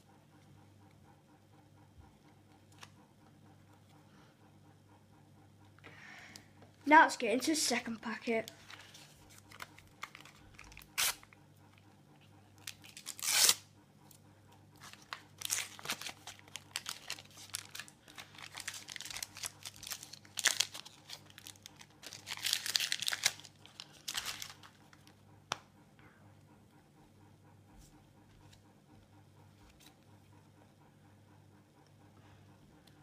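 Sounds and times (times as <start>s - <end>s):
paper stickers rustling: 8.1s - 11.2s, 14.8s - 25.0s
wrapper crinkling: 8.4s - 11.3s, 12.6s - 13.6s, 14.8s - 25.1s
wrapper tearing: 8.5s - 11.3s, 12.6s - 13.6s, 14.8s - 24.8s.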